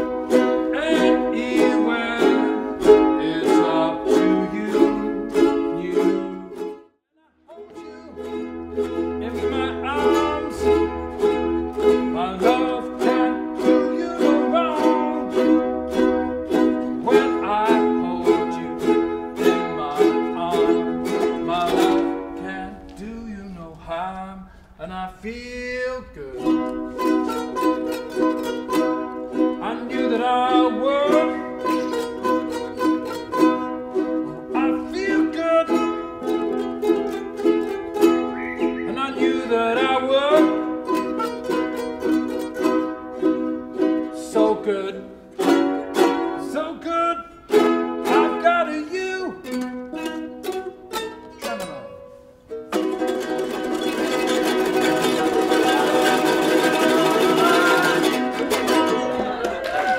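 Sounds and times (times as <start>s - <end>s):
ukulele ensemble strumming: 0.0s - 59.9s.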